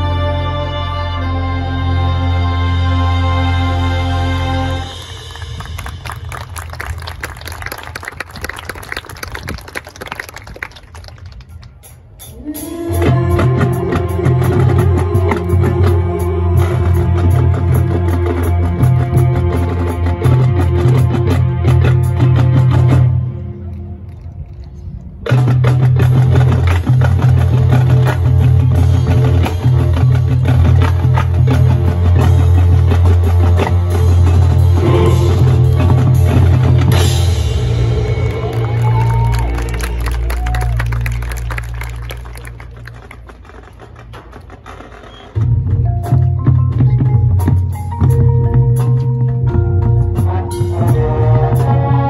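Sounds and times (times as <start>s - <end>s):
marching band chord: 0.0s - 6.8s, 25.8s - 40.3s, 49.7s - 52.0s
marching band playing: 0.0s - 24.3s, 25.3s - 52.0s
drums and percussion: 3.8s - 23.4s, 24.0s - 52.0s
audience applause: 5.1s - 11.8s, 38.2s - 43.8s.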